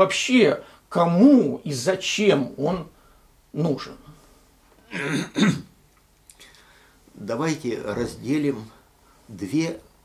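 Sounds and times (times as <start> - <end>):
man clearing his throat: 4.8 - 5.7.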